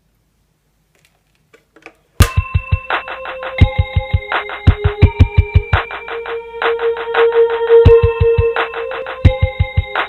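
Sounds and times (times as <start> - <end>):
telephone hold music: 2.2 - 10.0.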